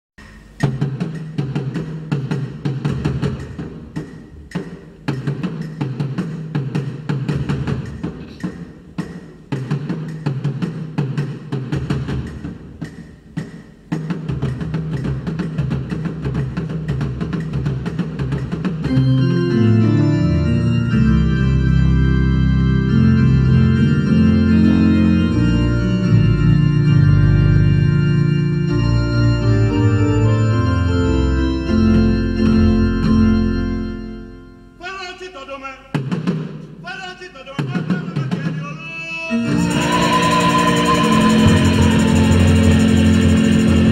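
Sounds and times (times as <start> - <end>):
drums struck with sticks: 0.2 - 18.9, 39.5 - 43.9
sustained chords: 39.4 - 43.9.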